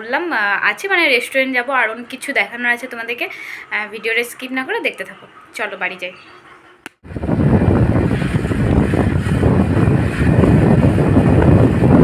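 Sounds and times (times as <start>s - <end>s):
vehicle wind and road noise: 7.0s - 12.0s
wind buffeting microphone: 7.0s - 12.0s.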